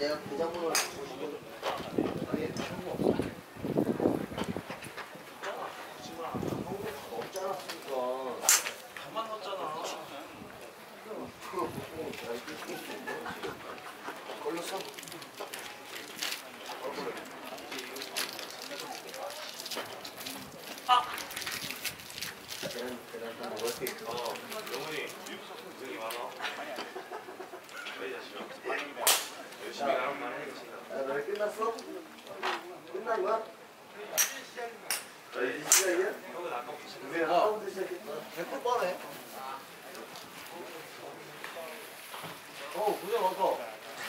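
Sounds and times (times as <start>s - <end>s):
men talking: 0.0s - 21.2s, 22.5s - 44.0s
low murmuring voices: 0.0s - 44.0s
golf clubs striking balls: 0.7s - 1.8s, 8.4s - 8.8s, 34.1s - 36.0s.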